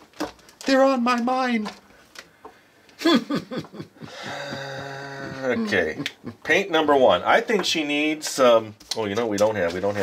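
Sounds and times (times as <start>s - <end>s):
person saying uh: 4.4s - 6.0s.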